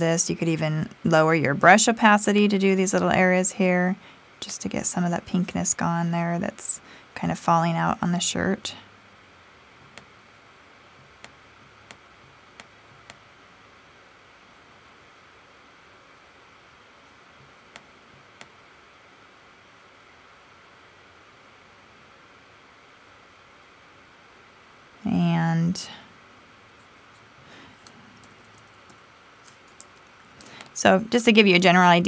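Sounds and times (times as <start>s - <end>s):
low hiss: 0.0s - 32.0s.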